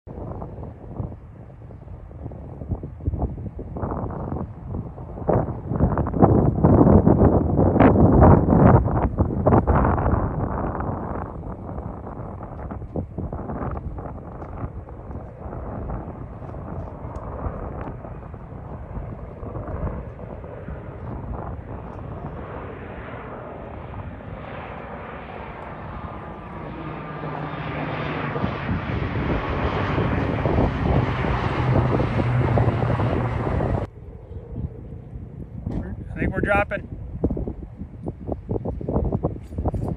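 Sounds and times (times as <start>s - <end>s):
wind noise on microphone: 0.0s - 39.9s
aircraft engines droning: 0.1s - 39.9s.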